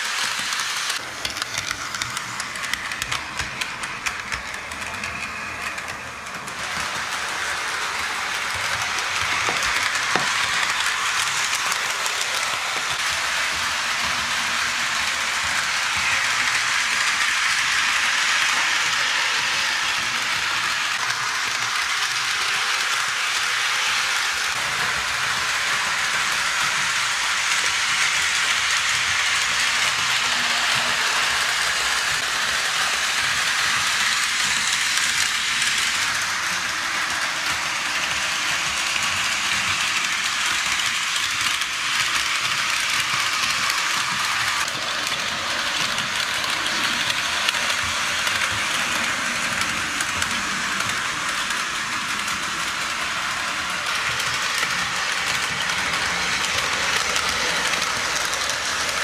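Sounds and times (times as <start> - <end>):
model train clicking rattle: 0.0 - 59.0.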